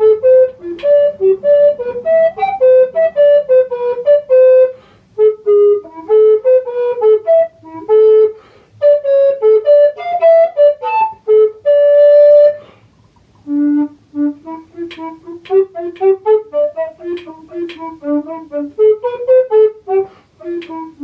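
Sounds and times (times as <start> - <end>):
recorder melody: 0.0 - 12.6, 13.4 - 21.0.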